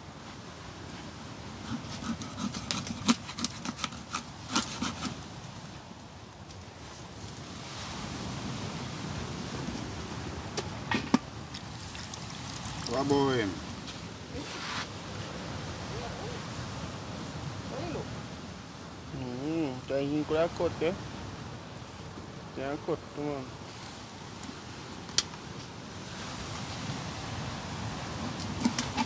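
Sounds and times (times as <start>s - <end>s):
knife cutting and scraping fish: 1.6s - 5.3s, 28.2s - 29.0s
background hiss: 5.1s - 28.7s.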